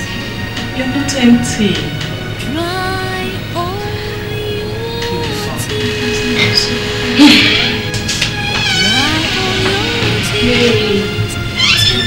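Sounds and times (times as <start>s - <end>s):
background music: 0.0s - 12.0s
door hinge creaking: 5.7s - 12.0s.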